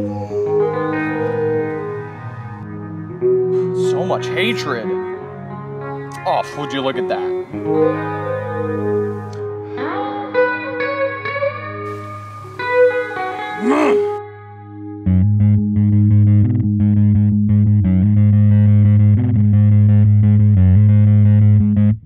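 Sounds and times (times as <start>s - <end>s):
distorted electric guitar chords: 11.9s - 14.2s
electric guitar pitch slides: 11.9s - 14.2s
bass guitar line: 15.0s - 22.0s.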